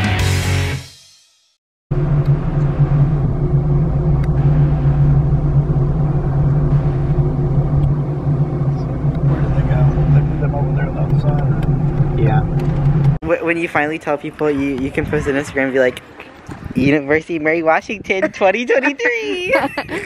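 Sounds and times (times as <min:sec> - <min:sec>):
car engine drone from cabin: 0:01.9 - 0:13.2.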